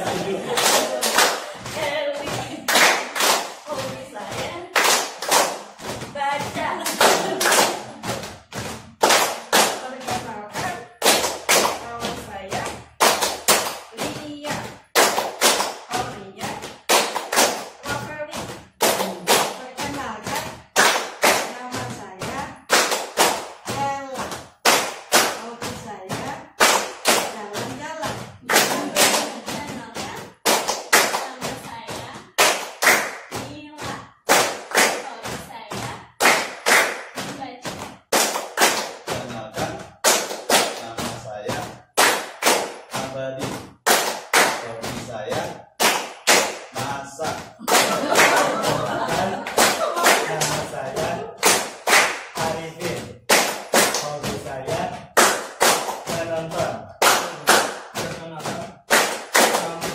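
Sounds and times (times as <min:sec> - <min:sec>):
group clapping rhythmically: 0:00.0 - 0:59.9
voices chanting: 0:46.8 - 0:51.5.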